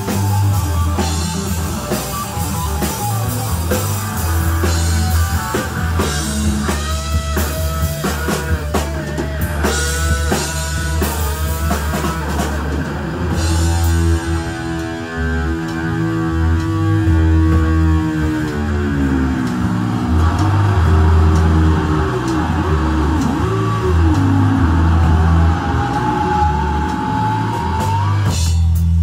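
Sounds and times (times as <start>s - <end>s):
distorted electric guitar solo: 0.0s - 28.6s
bass guitar: 0.0s - 29.0s
drums: 0.0s - 29.0s.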